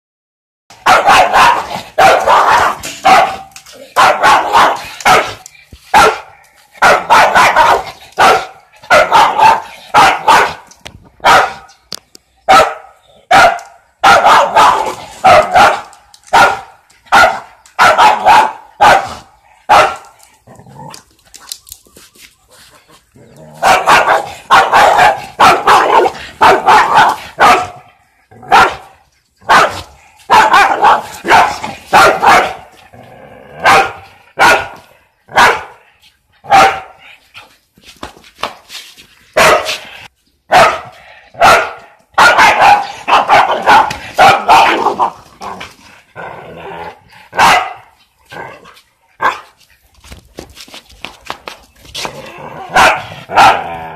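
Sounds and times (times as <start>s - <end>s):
dog barking sharply: 0.8s - 5.4s, 6.0s - 10.6s, 11.2s - 11.7s, 12.5s - 20.0s, 23.6s - 27.8s, 28.5s - 28.8s, 29.5s - 32.6s, 33.6s - 35.8s, 36.5s - 36.9s, 39.4s - 39.8s, 40.5s - 45.2s, 47.4s - 47.8s, 49.2s - 49.4s, 52.7s - 53.7s.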